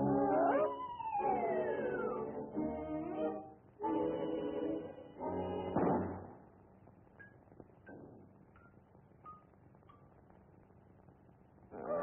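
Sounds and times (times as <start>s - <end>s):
film soundtrack hiss: 0.0s - 12.0s.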